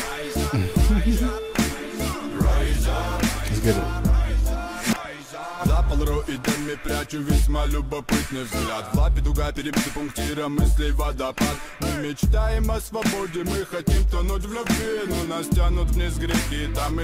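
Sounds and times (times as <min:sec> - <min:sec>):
man rapping: 0:00.0 - 0:01.7, 0:02.7 - 0:04.4, 0:05.6 - 0:17.0
deep bass line: 0:00.4 - 0:01.4, 0:02.4 - 0:04.5, 0:15.6 - 0:17.0.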